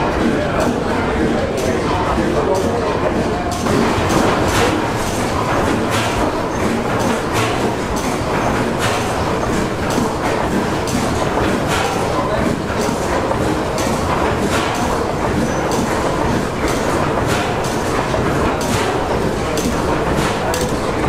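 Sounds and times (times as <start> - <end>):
engine mechanism clanking: 0.0 - 21.0
gas engine running slowly: 0.0 - 21.0.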